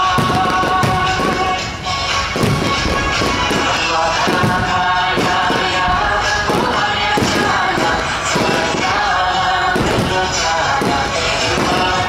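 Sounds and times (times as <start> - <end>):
fireworks bursting: 0.0 - 12.0
loud music: 0.0 - 12.0.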